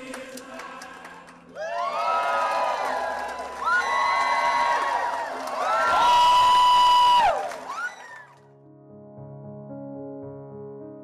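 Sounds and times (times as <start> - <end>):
audience cheering and whooping: 1.5 - 8.4.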